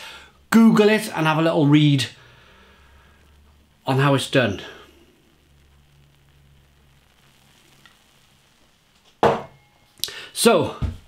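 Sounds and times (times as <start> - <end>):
beer foam fizzing: 0.0 - 9.4.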